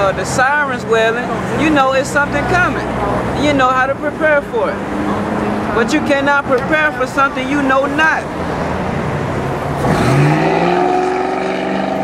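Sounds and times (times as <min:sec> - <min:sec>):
vehicle engine accelerating: 0:04.3 - 0:07.0, 0:08.3 - 0:12.0.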